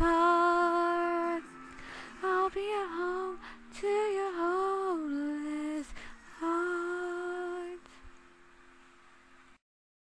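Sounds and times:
woman singing long notes: 0.0s - 8.0s
faint room hiss: 0.0s - 9.6s.

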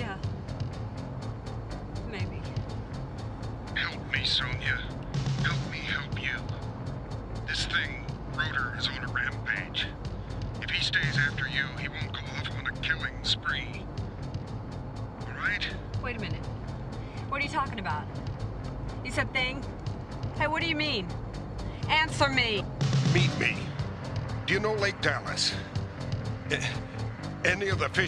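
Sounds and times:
low car engine hum: 0.0s - 28.0s
music with fast ticking: 0.0s - 28.0s.

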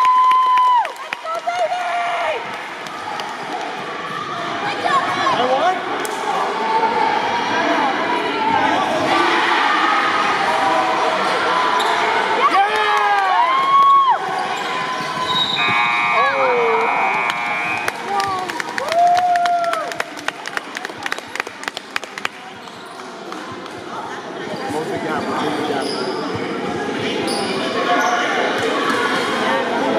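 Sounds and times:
gym chatter: 1.0s - 29.9s
high sliding shoe squeals: 14.3s - 16.5s.

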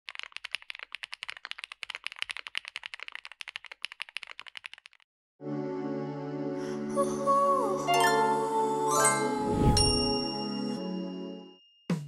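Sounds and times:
fast mechanical keyboard typing: 0.1s - 5.0s.

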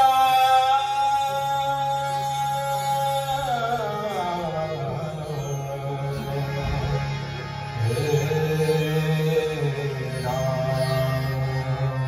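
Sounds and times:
harmonium and tanpura drone: 0.0s - 12.0s.

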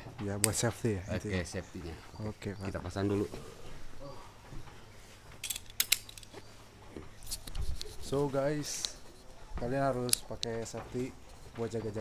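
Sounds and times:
harness buckles clicking: 4.5s - 12.0s.

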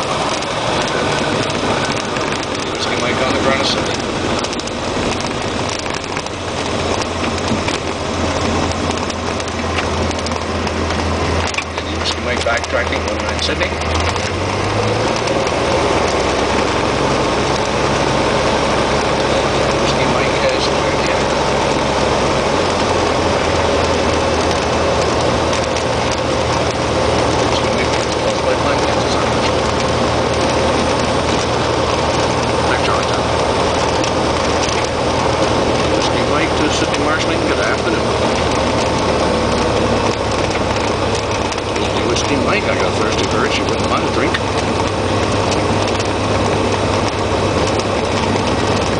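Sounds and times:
airplane engine and propeller drone: 0.0s - 48.9s.

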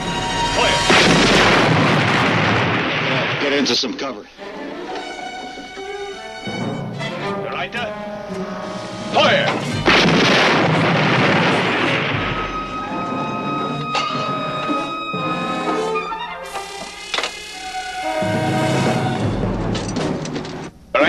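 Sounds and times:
brass-led orchestral score: 0.0s - 1.7s, 4.4s - 16.5s, 17.7s - 20.3s
shell explosion: 0.8s - 4.0s, 9.6s - 13.4s.

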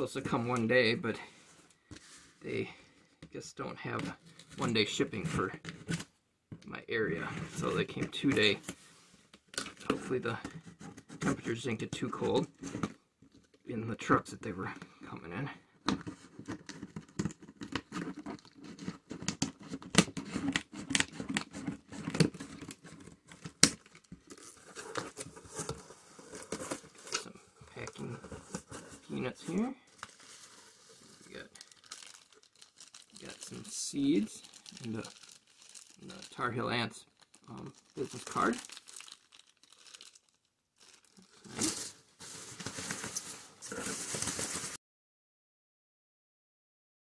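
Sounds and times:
cardboard flaps rustling: 15.9s - 32.1s, 41.4s - 44.8s
tape tearing: 16.0s - 29.0s, 37.3s - 44.8s
plastic bag crinkling: 16.4s - 44.8s.

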